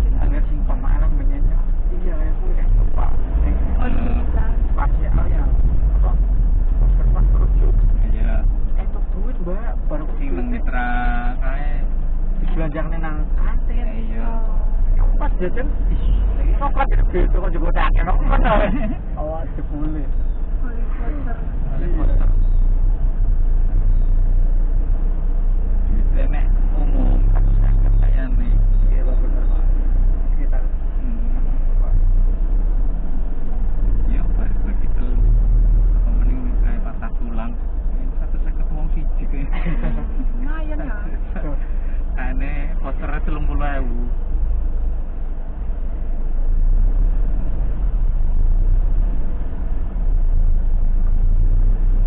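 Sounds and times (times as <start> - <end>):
indistinct talk: 0.0 - 44.6
engine and road rumble: 0.0 - 52.0.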